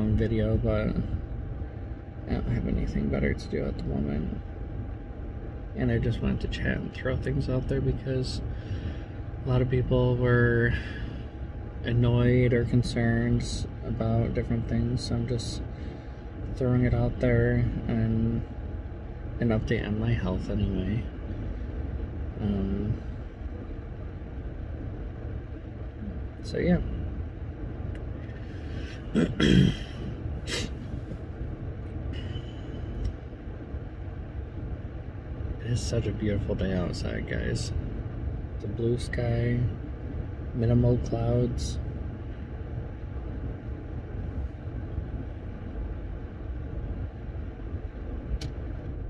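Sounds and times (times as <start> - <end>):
car air conditioning blowing: 0.0 - 49.0.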